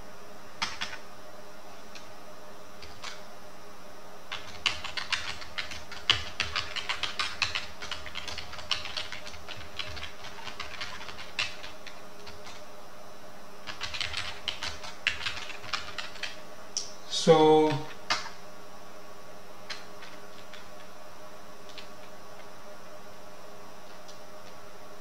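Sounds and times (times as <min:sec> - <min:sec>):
keyboard typing: 0:00.6 - 0:01.0, 0:02.8 - 0:03.2, 0:04.3 - 0:12.7, 0:13.6 - 0:16.4, 0:19.7 - 0:20.9.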